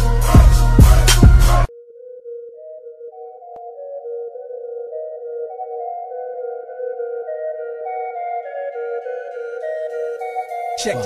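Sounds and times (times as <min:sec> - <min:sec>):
hip-hop track with heavy bass: 0:00.0 - 0:01.7.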